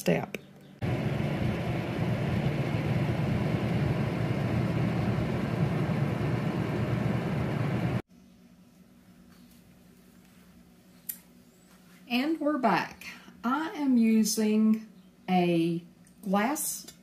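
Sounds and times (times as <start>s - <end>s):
fan humming: 0.0s - 8.0s.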